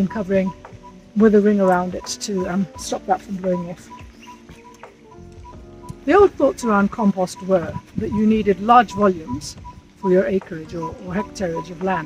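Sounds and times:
bird calling: 0.0 - 12.0
small clicks: 3.9 - 6.0.

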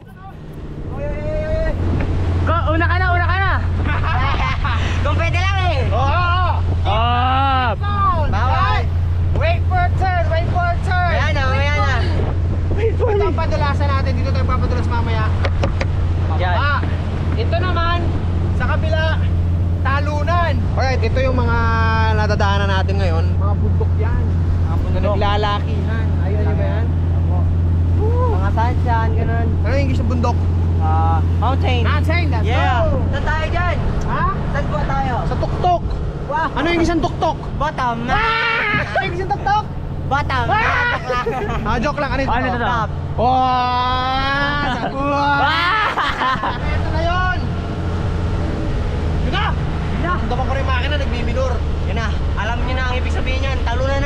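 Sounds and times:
boat engine drone: 0.0 - 54.0
voices: 0.0 - 54.0.

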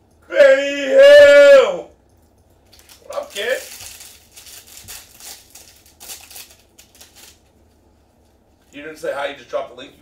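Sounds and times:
handling of cards: 2.6 - 8.8
foil wrapper crinkling and tearing: 2.7 - 7.5.

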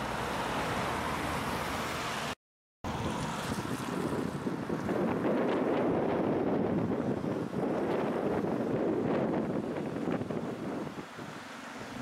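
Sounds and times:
wind buffeting microphone: 2.9 - 12.0.

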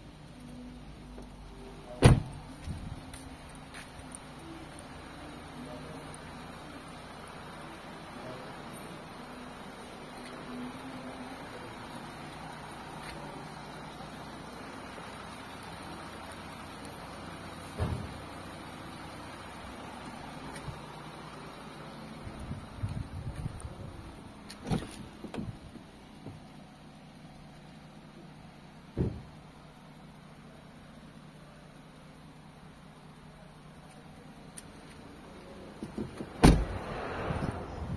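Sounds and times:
car engine idling: 0.0 - 37.9
knocks and thumps: 29.0 - 29.3.

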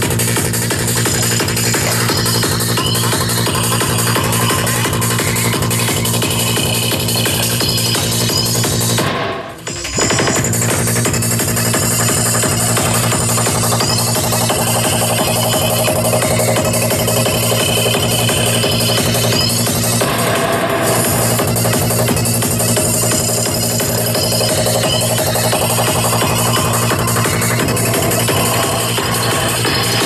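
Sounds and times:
electronic dance music: 0.0 - 30.0.

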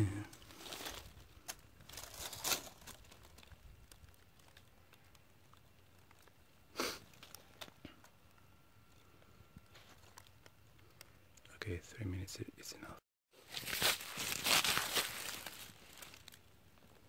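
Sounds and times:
rustling and crinkling: 0.0 - 11.4, 13.4 - 17.0.

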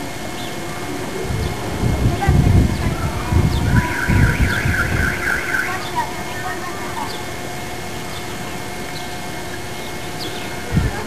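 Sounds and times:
high warbling alarm tone: 0.0 - 10.8
low rumbles: 0.0 - 11.0.

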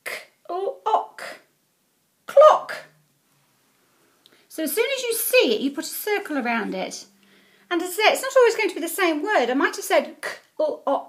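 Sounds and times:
woman sounding out speech sounds: 0.0 - 1.5, 2.3 - 3.0, 4.5 - 11.0.

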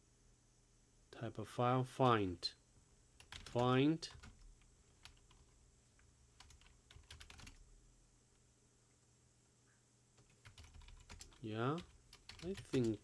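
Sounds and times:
faint keyboard typing: 3.2 - 7.7, 10.2 - 13.0.

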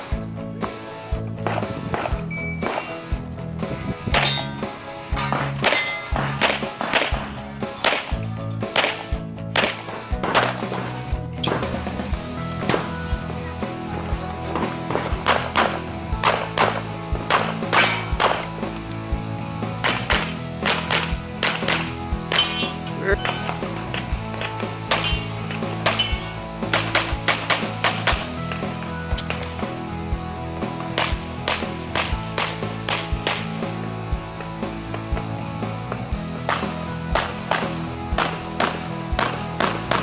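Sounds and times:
background music with held tones: 0.0 - 40.0
rapid handgun fire: 5.4 - 8.2, 8.8 - 11.0, 19.8 - 22.5, 26.7 - 28.3, 31.0 - 33.5, 37.2 - 40.0.

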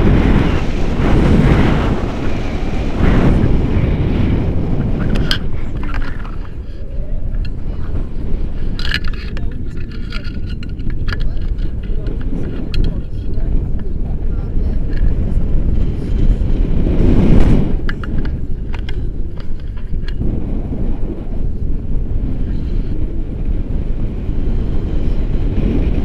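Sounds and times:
wind rushing over microphone: 0.0 - 26.0.

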